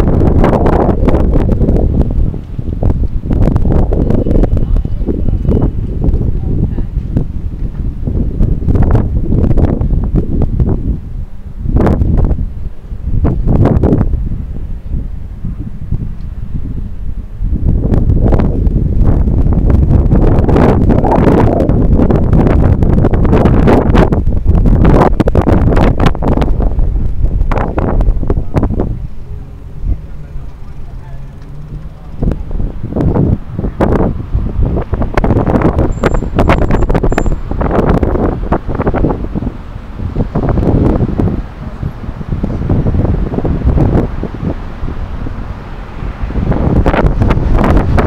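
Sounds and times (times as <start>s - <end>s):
wind buffeting microphone: 0.0s - 48.0s.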